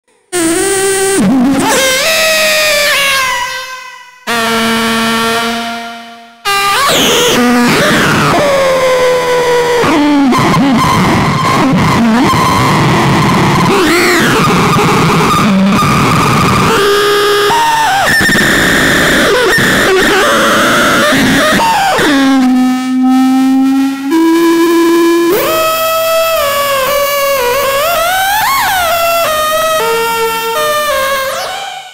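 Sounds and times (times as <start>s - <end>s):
analog synthesizer tone with pitch glides: 0.4s - 31.9s.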